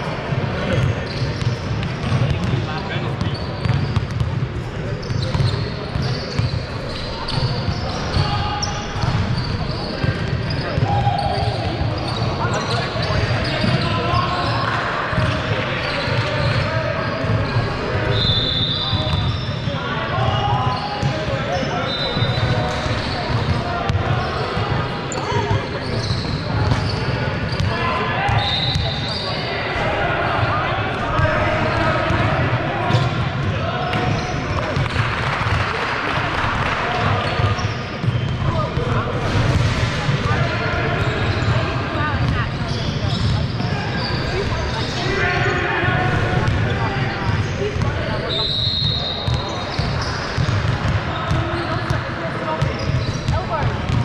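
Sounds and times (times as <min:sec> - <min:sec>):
indistinct chatter: 0:00.0 - 0:54.0
basketballs bouncing on hardwood: 0:53.6 - 0:54.0.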